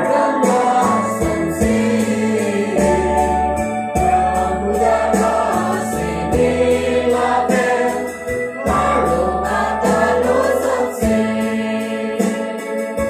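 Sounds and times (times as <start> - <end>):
choir singing a gospel hymn: 0.0 - 13.0
electronic keyboard low notes: 0.0 - 13.0.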